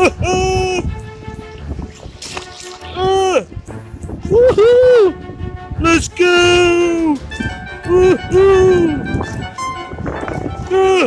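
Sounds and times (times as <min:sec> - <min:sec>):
background music: 0:00.0 - 0:11.0
person shouting woo: 0:04.3 - 0:05.1.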